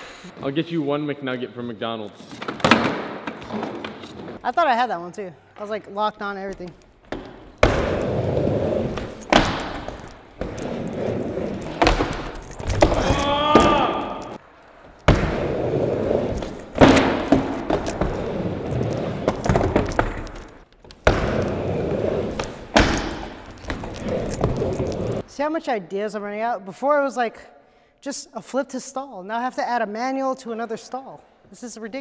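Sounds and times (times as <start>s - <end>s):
skateboard wheels rolling on ramp: 7.1s - 14.4s, 15.0s - 25.2s
skateboard clacks and thuds: 15.0s - 25.2s.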